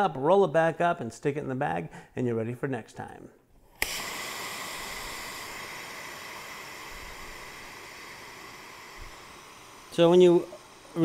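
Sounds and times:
air hissing out of mattress valve: 3.6s - 11.0s.

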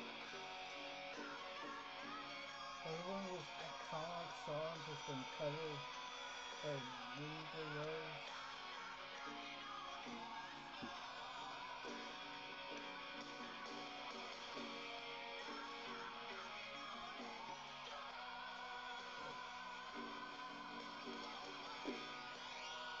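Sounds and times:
guitar strumming chords: 0.0s - 23.0s.

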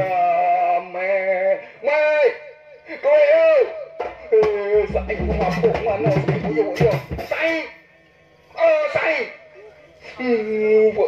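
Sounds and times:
drum accompaniment: 4.0s - 7.7s.

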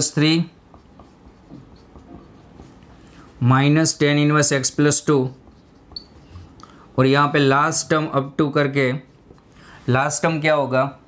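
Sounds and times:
marker scratching on whiteboard: 0.0s - 10.4s.

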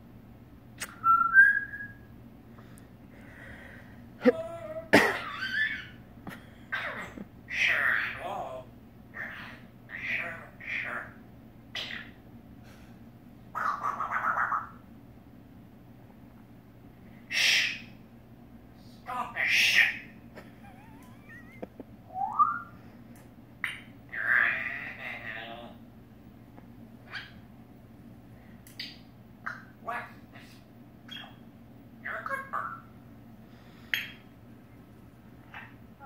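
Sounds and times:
parrot pulsing call: 6.7s - 12.2s, 13.5s - 14.8s, 17.3s - 17.9s, 19.1s - 20.1s, 23.6s - 25.8s, 31.1s - 31.4s.

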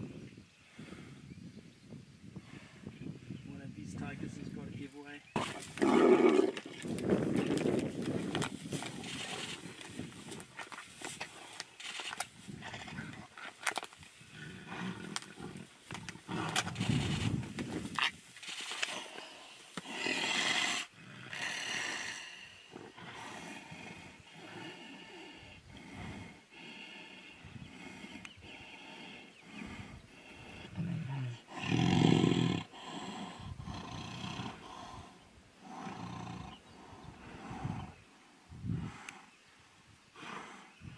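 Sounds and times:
tigers snarling and roaring: 5.4s - 39.4s, 40.1s - 40.9s.

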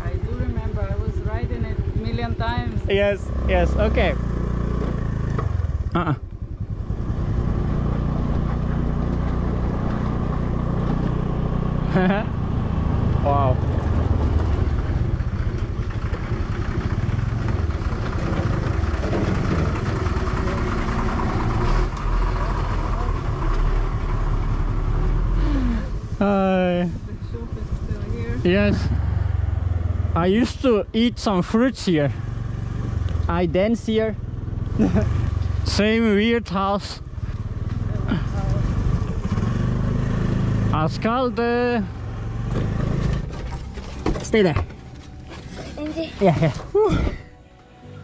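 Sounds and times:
motor scooter running: 0.0s - 30.8s, 31.4s - 47.3s.

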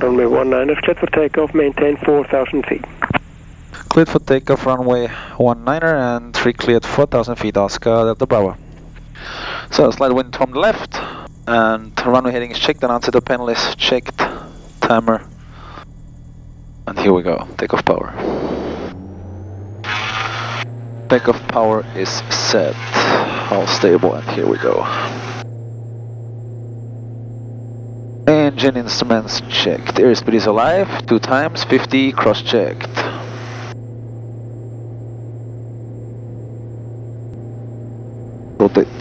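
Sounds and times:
aircraft engines droning: 0.0s - 39.0s
faint high whine: 0.0s - 39.0s.

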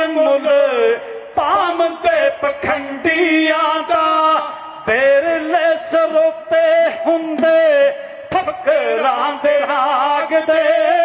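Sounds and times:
men singing chant-like: 0.0s - 11.0s.

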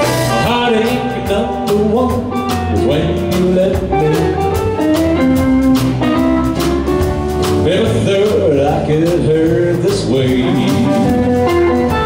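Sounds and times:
drum kit beat: 0.0s - 12.0s
electric bass: 0.0s - 12.0s
electric guitars: 0.0s - 12.0s.

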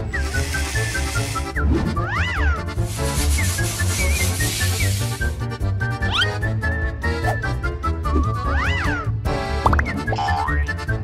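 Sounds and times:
air pumping hiss: 0.2s - 1.6s, 2.8s - 5.5s.

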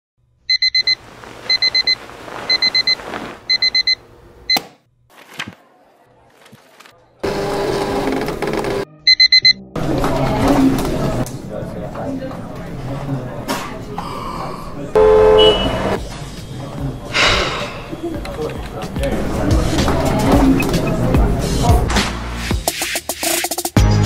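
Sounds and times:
digital alarm clock beeping: 0.5s - 4.6s, 9.1s - 9.6s, 15.0s - 15.9s
mixed background sound: 0.5s - 8.8s.

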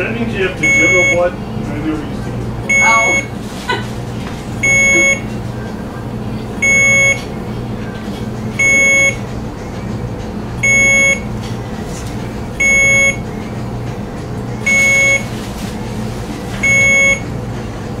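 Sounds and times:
infusion pump alarm beeps: 0.6s - 1.4s, 2.7s - 3.4s, 4.6s - 5.3s, 6.6s - 7.3s, 8.6s - 9.3s, 10.6s - 11.3s, 12.6s - 13.3s, 14.6s - 15.4s, 16.6s - 17.3s.

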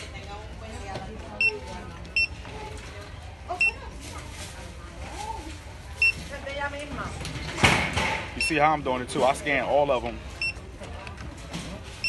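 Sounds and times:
barcode scanner beeping: 1.4s - 2.4s.

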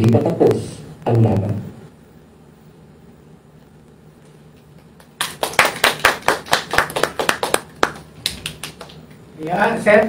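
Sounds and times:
audience clapping: 4.7s - 9.3s.

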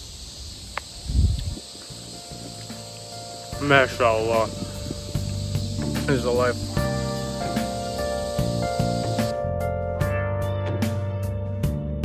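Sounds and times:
cicadas droning: 0.0s - 9.5s.

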